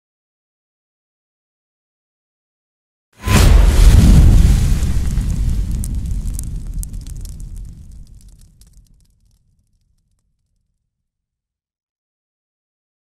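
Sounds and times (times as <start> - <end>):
deep rumbling boom: 3.2 - 9.1
fire crackling: 3.2 - 10.5.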